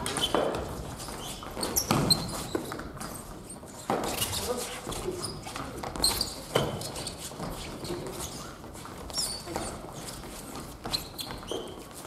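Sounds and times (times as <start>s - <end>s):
shoe squeaks: 0.0s - 12.0s.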